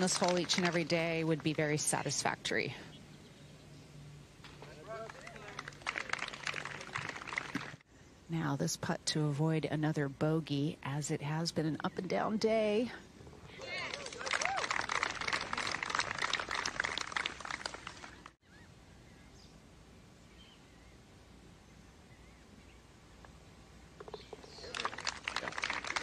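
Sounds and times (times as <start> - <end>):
crowd applauding: 0.0 - 1.3, 4.8 - 7.8, 13.6 - 18.4, 24.5 - 26.0.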